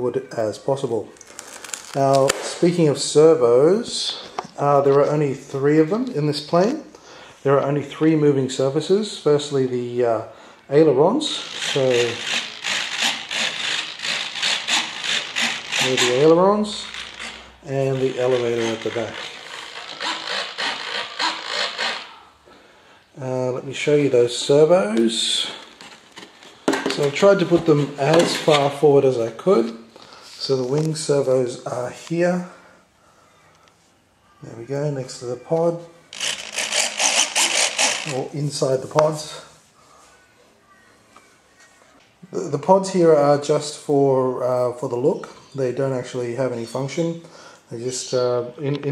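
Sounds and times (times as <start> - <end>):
servos rasping buzz: 11.4 - 22.1, 36.1 - 38.2
servos buzzing whir: 36.2 - 38.2.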